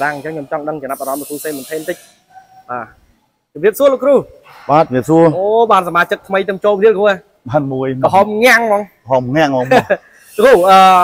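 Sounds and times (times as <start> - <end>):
man speaking: 0.0 - 11.0
steady high hiss: 0.0 - 11.0.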